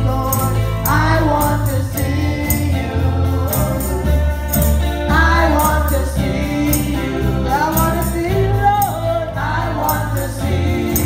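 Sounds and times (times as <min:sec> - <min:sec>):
deep bass accompaniment: 0:00.0 - 0:11.0
high percussion beat: 0:00.0 - 0:11.0
women singing gospel song: 0:00.0 - 0:11.0.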